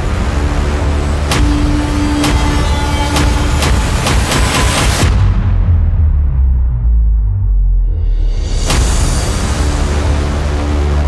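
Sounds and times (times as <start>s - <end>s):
heavy vehicle engine rumbling: 0.0s - 5.0s
background music: 0.0s - 11.0s
sharp hits: 0.1s - 6.0s
held musical tone: 0.5s - 5.0s.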